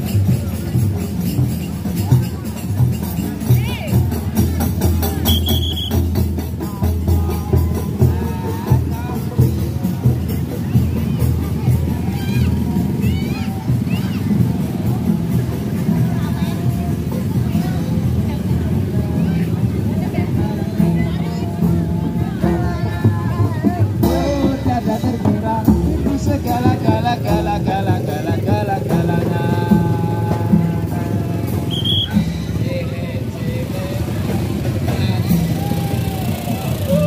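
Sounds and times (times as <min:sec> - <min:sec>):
drum band music: 0:00.0 - 0:37.0
motorbike engines passing: 0:00.0 - 0:37.0
people's voices: 0:00.0 - 0:37.0.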